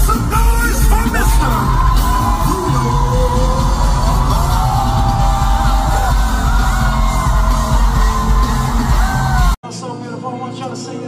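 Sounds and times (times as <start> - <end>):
person singing: 0.0 - 6.5
crowd yelling and whooping: 0.0 - 9.6
loud band with booming bass: 0.0 - 9.6.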